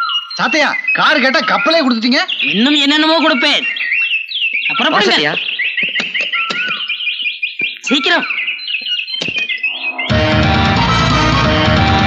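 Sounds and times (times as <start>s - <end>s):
electronic high chirps: 0.0s - 11.8s.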